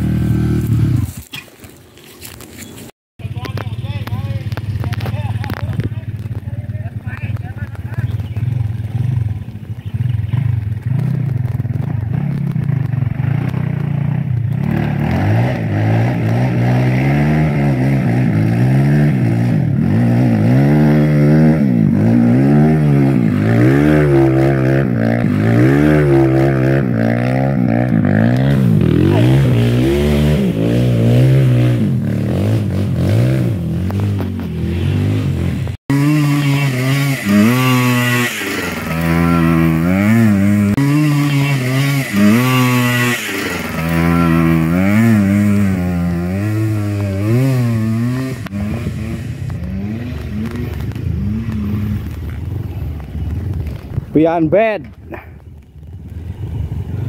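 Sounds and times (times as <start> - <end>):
motorcycle engine revving hard: 0.0 - 1.2, 3.6 - 54.5.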